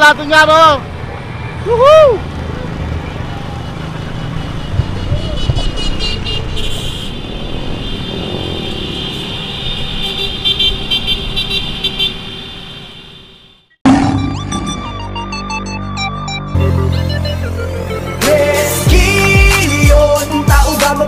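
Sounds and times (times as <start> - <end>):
motorcycle and van engines: 0.0 - 15.1
horns tooting: 2.5 - 15.6.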